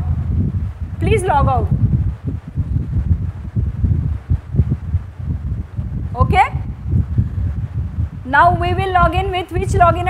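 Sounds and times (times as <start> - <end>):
low rumbling on microphone: 0.0 - 10.0
muffled bumps: 0.0 - 10.0.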